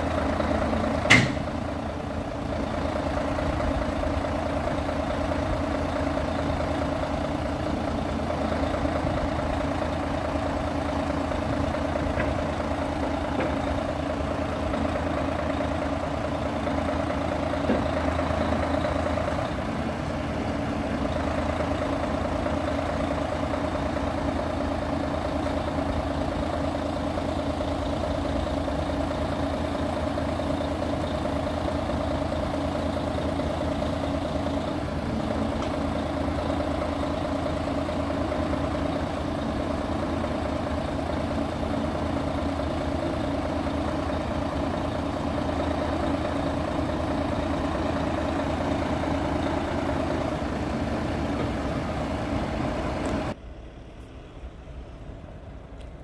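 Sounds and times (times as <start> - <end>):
diesel truck engine idling: 0.0 - 56.0.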